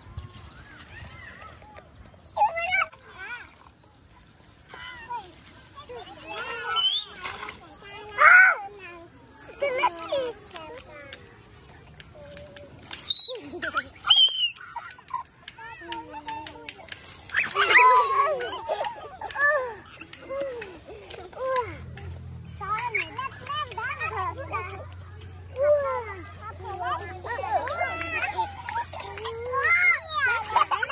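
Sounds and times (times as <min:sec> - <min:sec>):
young children squealing and chattering: 0:00.0 - 0:30.9.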